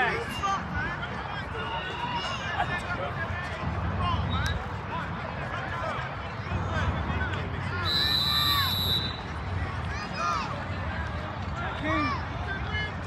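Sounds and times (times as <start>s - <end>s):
distant voices and shouts: 0.0s - 13.0s
high whistle blast: 7.8s - 9.3s.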